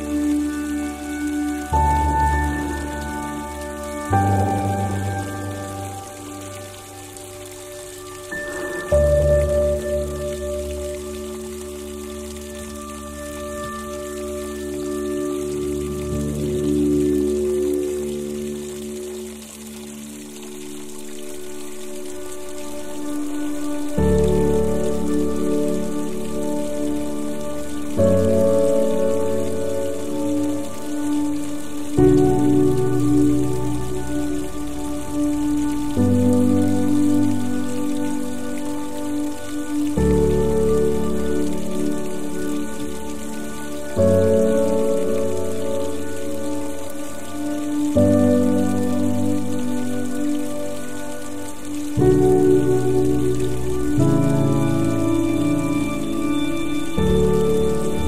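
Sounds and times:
slow calm piano music: 0.0s - 58.0s
soft rain hiss: 0.0s - 58.0s.

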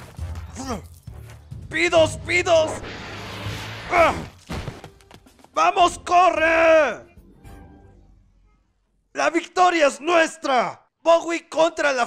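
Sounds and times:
background music: 0.0s - 8.6s.

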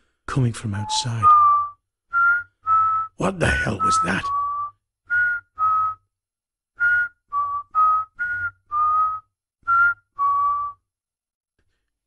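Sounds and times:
person whistling eerie tune: 0.7s - 6.1s, 6.8s - 10.9s.

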